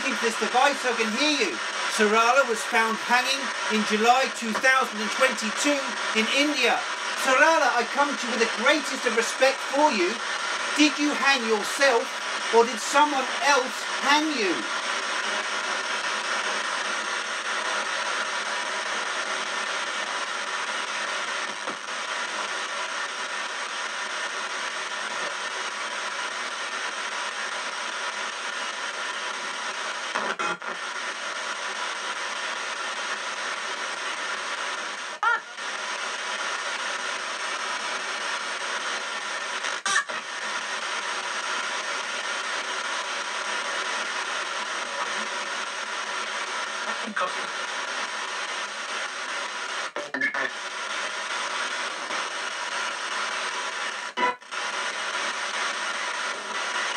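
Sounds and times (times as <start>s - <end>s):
clicks in static: 0.0s - 14.8s, 21.5s - 22.0s
radio static hiss: 0.0s - 56.9s.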